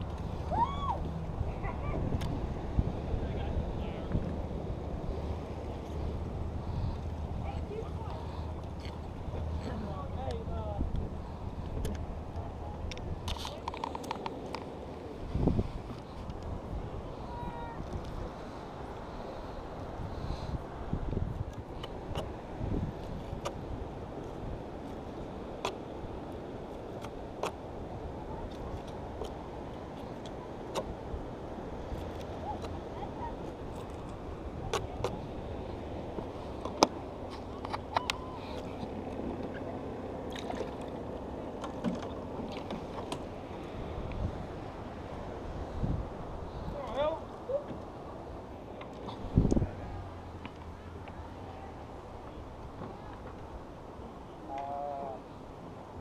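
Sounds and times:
wind gusts on microphone: 0.0s - 41.5s, 42.2s - 54.5s
sea: 0.0s - 56.0s
wind: 0.0s - 56.0s.

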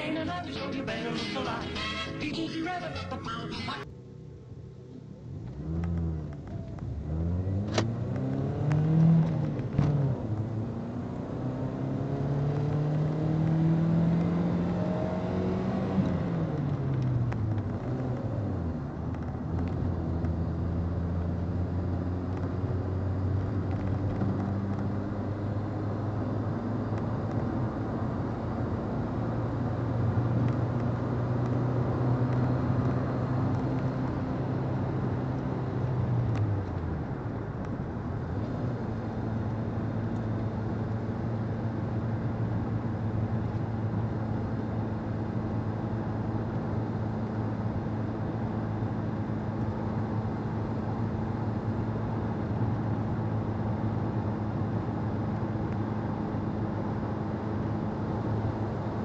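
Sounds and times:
car engine revving: 5.5s - 36.8s.

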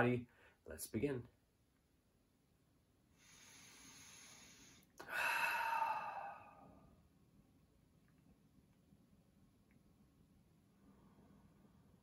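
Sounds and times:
man breathing deeply: 3.2s - 6.9s.

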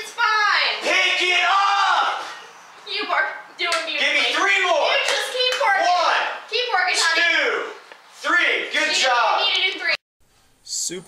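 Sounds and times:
high-pitched young voice talking: 2.8s - 7.2s, 9.4s - 10.0s.

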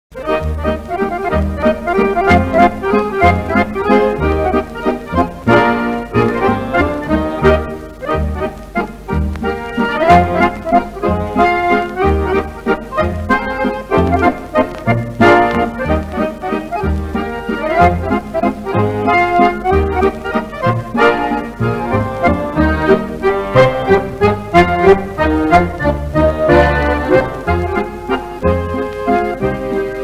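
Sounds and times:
accordion melody: 0.1s - 30.0s
guitar and bass beat: 0.2s - 30.0s.

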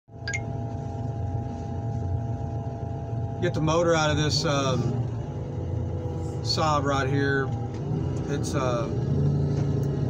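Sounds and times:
diesel engine idling: 0.6s - 10.0s.

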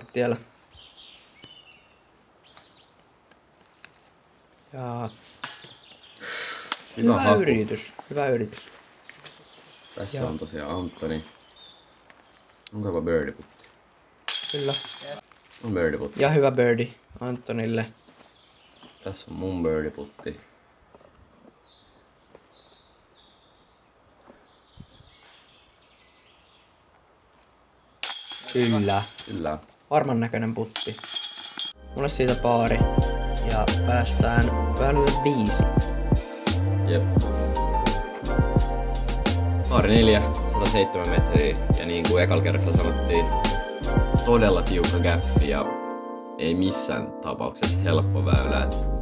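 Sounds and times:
songbirds chirping and trilling: 0.0s - 13.8s, 14.5s - 31.0s, 31.8s - 47.6s.

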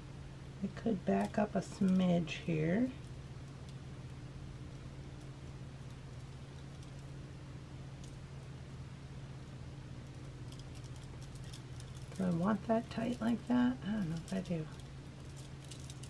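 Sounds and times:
steady low hum: 0.0s - 16.0s
glass beads and metal charms clicking: 10.1s - 16.0s.

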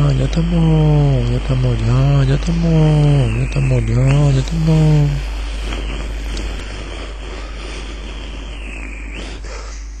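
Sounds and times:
low hum: 0.0s - 10.0s
steady hiss: 0.0s - 10.0s.

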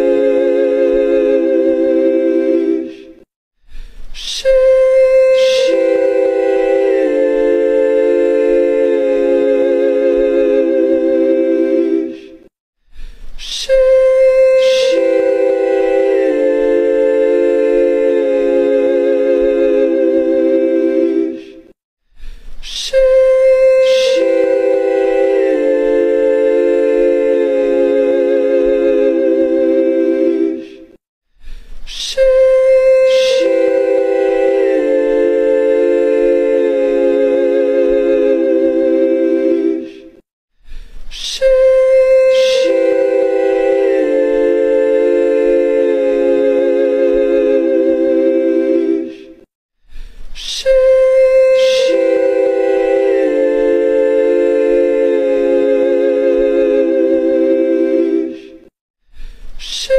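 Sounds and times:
a cappella vocal chord sung: 0.0s - 12.5s, 13.4s - 21.8s, 22.6s - 31.0s, 31.9s - 40.2s, 41.1s - 49.5s, 50.4s - 58.8s.

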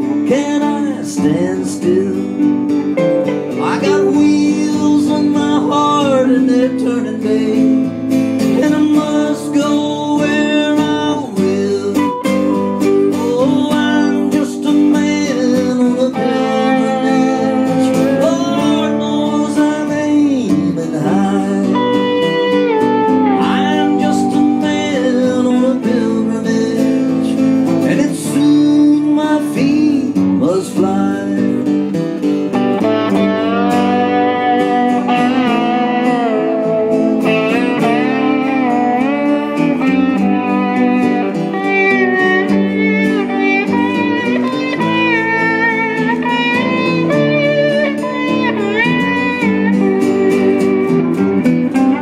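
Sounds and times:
acoustic guitar strumming chords: 0.0s - 52.0s
lead melody with bending notes: 0.0s - 52.0s.

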